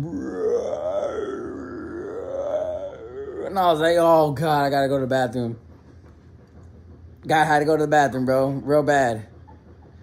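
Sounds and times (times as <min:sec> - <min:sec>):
man growling with his voice: 0:00.0 - 0:03.8.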